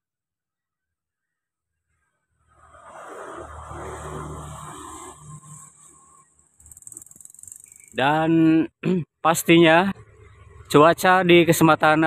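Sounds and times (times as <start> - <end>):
vehicle engine passing: 2.4 - 8.0.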